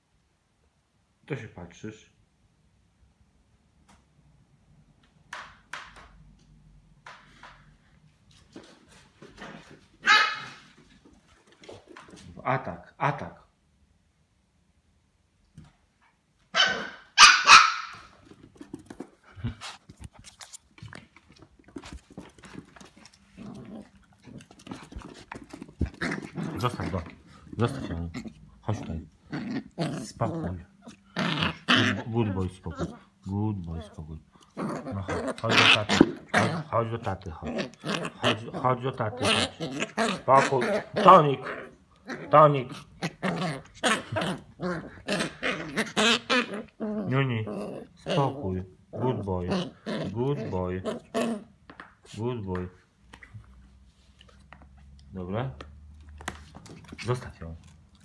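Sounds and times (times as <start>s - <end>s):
small dogs barking: 10.0s - 10.6s, 16.5s - 18.1s
dogs scuffling: 17.9s - 28.4s
dogs growling: 21.7s - 52.2s.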